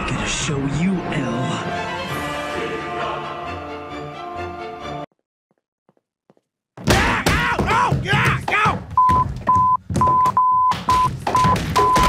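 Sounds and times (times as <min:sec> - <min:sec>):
music: 0:00.0 - 0:05.1.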